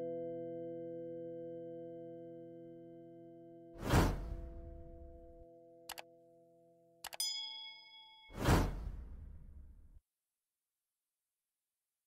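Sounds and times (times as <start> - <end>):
loud whoosh: 3.8 - 5.4, 8.3 - 10.0
mouse clicks: 7.0 - 7.2
bright bell ding: 7.1 - 8.4.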